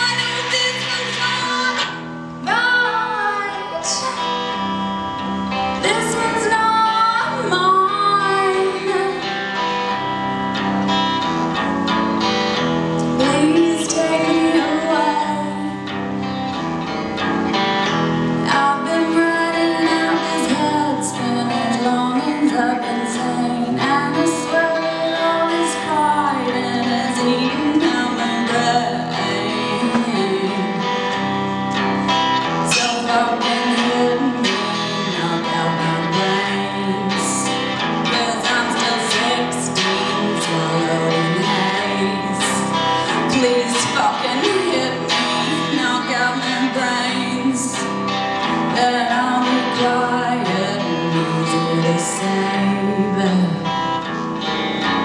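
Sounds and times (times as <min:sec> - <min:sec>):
woman singing: 0:00.0 - 0:11.3, 0:11.9 - 0:16.6, 0:17.5 - 0:55.0
electric guitar through amplifier: 0:00.0 - 0:55.0.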